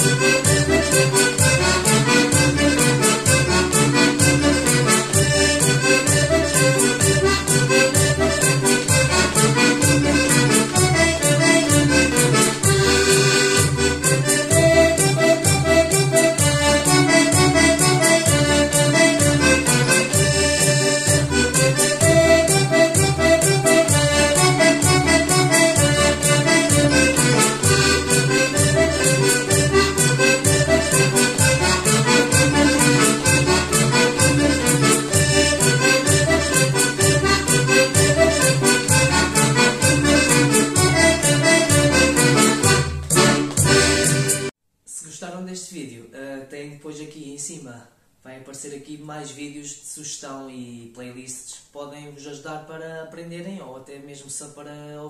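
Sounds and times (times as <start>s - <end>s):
button accordion playing march: 0.0s - 44.5s.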